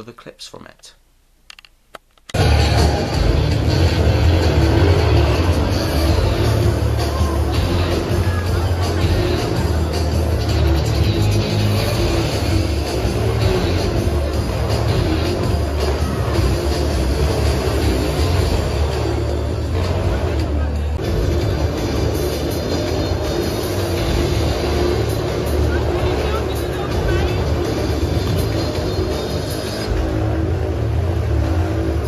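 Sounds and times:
loud music with heavy bass: 2.4s - 32.0s
motorbike engine running: 2.4s - 32.0s.

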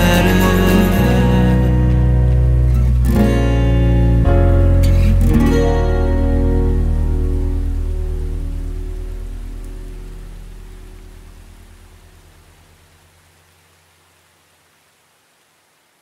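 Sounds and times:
acoustic guitar chord ringing: 0.0s - 11.8s.

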